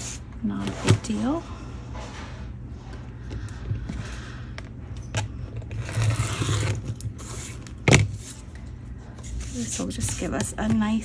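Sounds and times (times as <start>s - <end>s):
rotary cutter scraping: 5.7s - 7.6s
paper being handled: 9.2s - 11.0s.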